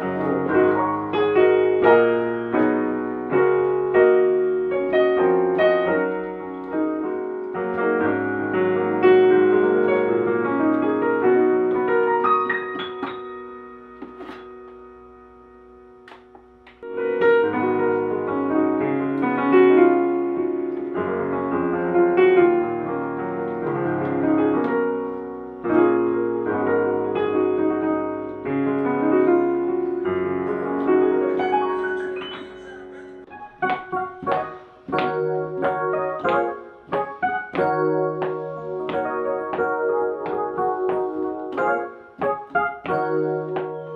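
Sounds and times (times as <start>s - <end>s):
digital piano playing: 0.0s - 43.9s.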